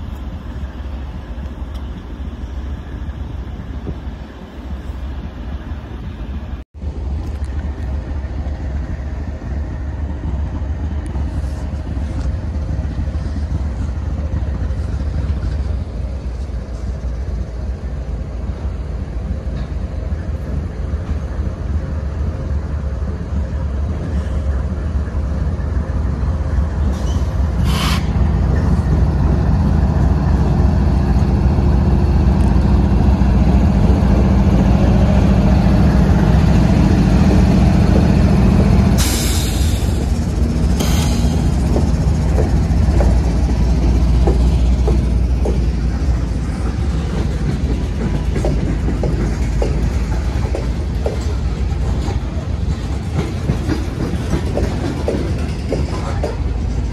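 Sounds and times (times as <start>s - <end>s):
diesel locomotive engine rumble: 0.0s - 56.9s.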